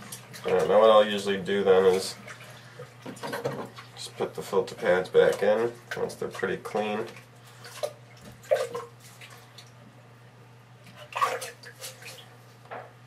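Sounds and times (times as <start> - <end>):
water splashing and dripping: 1.8 - 4.1, 5.2 - 9.8, 10.9 - 12.4.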